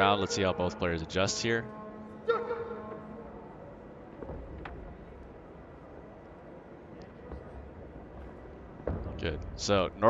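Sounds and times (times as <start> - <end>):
arena ambience: 0.0 - 10.0.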